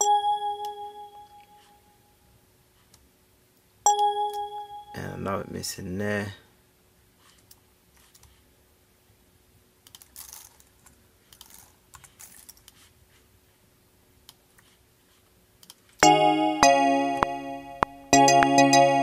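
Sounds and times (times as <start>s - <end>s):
keyboard chords with drum hits: 0.0s - 1.5s, 3.9s - 5.2s, 16.0s - 19.0s.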